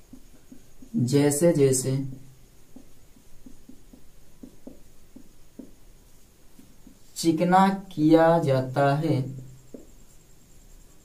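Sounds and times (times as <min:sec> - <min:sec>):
marker squeaking on whiteboard: 0:00.0 - 0:01.0, 0:02.1 - 0:07.2, 0:09.4 - 0:11.0.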